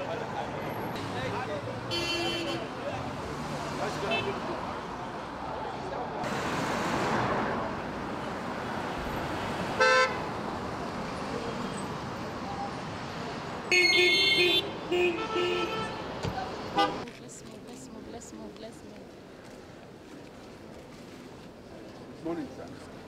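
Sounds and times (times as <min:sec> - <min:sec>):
hubbub of many voices: 0:00.0 - 0:06.3, 0:16.0 - 0:23.0
vehicle horns tooting: 0:01.9 - 0:02.7, 0:09.8 - 0:10.2, 0:13.7 - 0:17.0.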